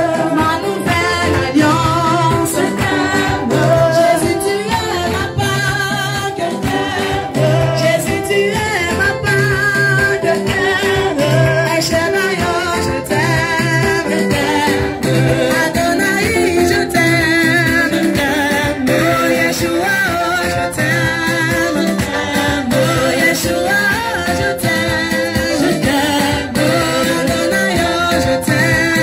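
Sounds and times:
congregation singing a worship song: 0.0s - 29.0s
woman singing into a microphone: 0.0s - 29.0s
hand clapping: 0.3s - 27.9s.

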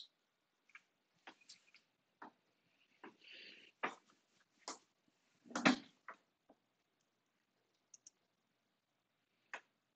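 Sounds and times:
faint computer clicks: 7.8s - 8.2s.

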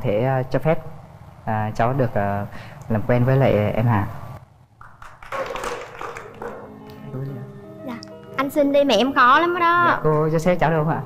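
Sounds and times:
scattered hand clapping: 4.8s - 7.0s
background music with held notes: 5.6s - 11.0s.

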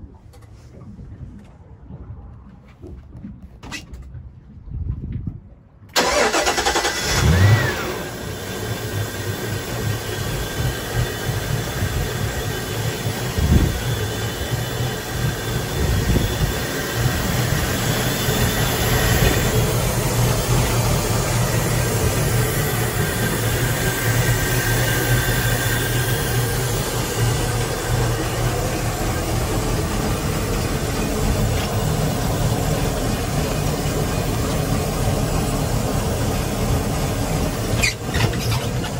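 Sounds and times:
boat engine starting and idling: 0.0s - 5.0s, 5.6s - 38.9s.

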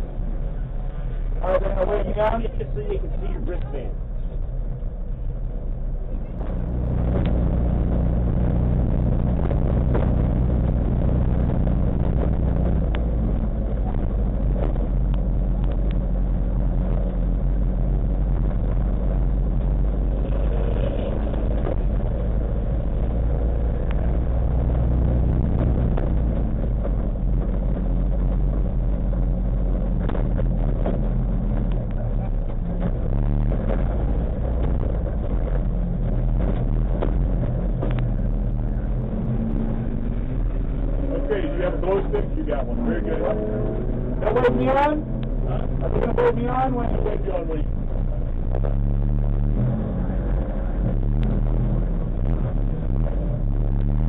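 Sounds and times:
race car engine idling: 0.0s - 54.0s.

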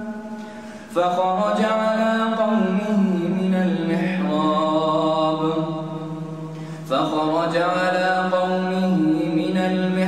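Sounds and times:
man reciting melodic chant: 0.0s - 10.0s.

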